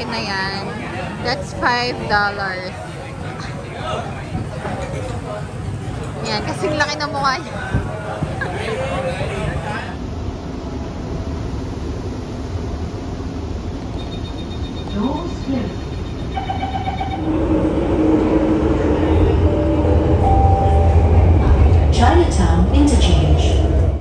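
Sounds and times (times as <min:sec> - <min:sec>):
subway train low rumble: 0:00.0 - 0:24.0
train steady whine: 0:00.0 - 0:24.0.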